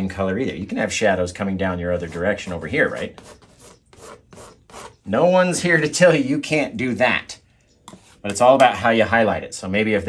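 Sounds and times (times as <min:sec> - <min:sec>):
palette knife scraping oil paint: 0:01.6 - 0:05.1.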